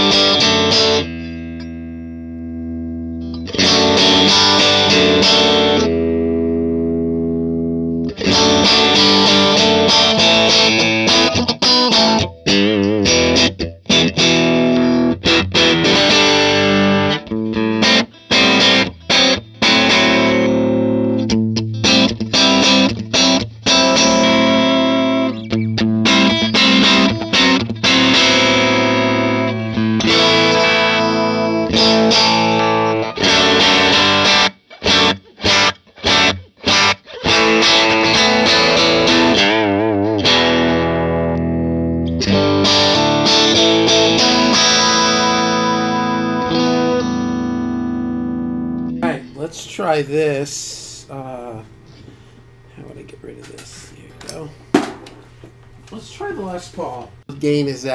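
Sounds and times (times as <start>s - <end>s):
overdriven electric guitar chords: 0.0s - 50.4s.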